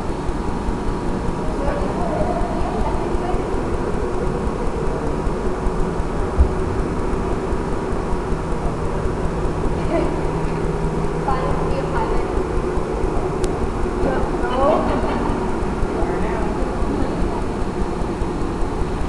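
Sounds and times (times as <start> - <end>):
faint hum tones: 0.0 - 19.0
low room rumble: 0.0 - 19.0
indistinct voices: 1.2 - 18.6.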